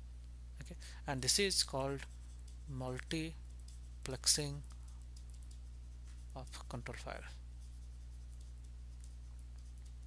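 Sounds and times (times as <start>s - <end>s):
low electrical hum: 0.0s - 10.0s
stylus scratching on pen tablet: 1.8s - 2.8s, 5.2s - 10.0s.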